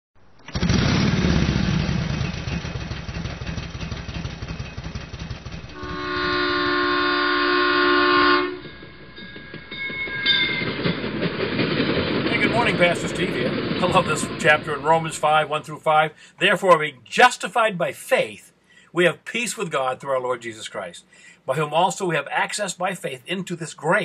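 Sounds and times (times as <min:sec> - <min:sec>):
train rumbling past: 0:01.7 - 0:16.2
train horn: 0:05.7 - 0:08.8.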